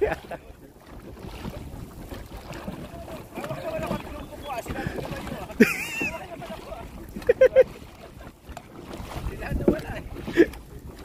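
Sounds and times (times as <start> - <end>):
person laughing: 5.5 - 6.4, 7.2 - 7.7
wind noise on microphone: 8.8 - 11.0.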